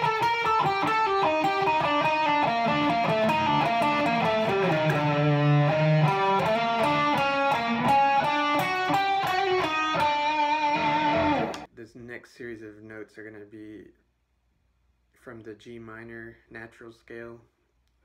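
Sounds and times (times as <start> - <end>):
electric guitar lead: 0.0 - 11.7.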